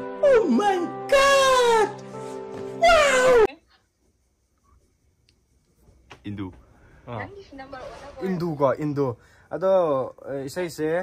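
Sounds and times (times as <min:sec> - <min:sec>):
man wailing cry: 0:00.2 - 0:02.0, 0:02.8 - 0:03.5.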